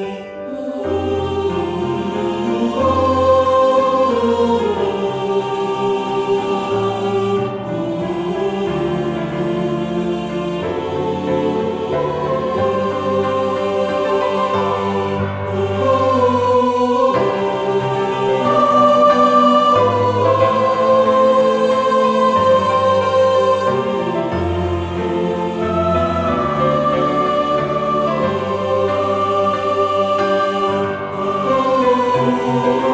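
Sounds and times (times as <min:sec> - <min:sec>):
mixed choir singing: 0:00.0 - 0:32.9
piano accompaniment: 0:00.0 - 0:32.9.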